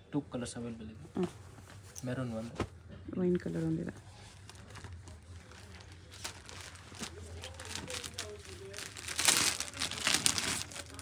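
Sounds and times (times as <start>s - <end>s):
fabric rustling: 3.5s - 11.0s.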